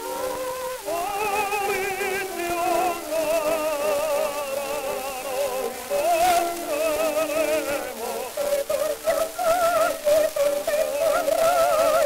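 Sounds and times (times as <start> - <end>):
record crackle and hiss: 0.0 - 12.0
soprano singing with vibrato: 0.0 - 12.0.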